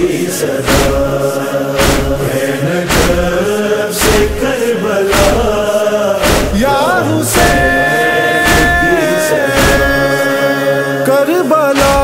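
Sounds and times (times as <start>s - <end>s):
sharp percussive beat: 0.0s - 10.5s, 11.7s - 12.0s
chorus singing vocal drone: 0.0s - 12.0s.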